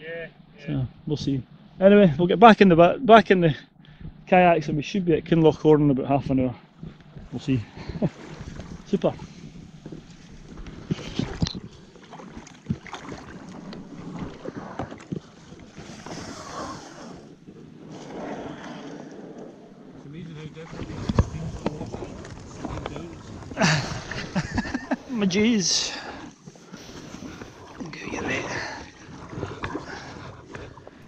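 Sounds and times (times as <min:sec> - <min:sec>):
water lapping and splashing: 0:06.7 - 0:31.0
kayak scraping on stones: 0:07.0 - 0:23.6.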